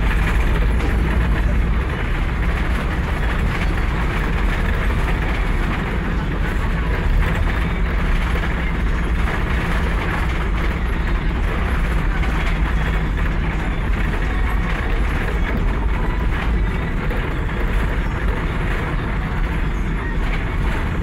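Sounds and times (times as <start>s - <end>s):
road and engine rumble in cabin: 0.0s - 21.0s.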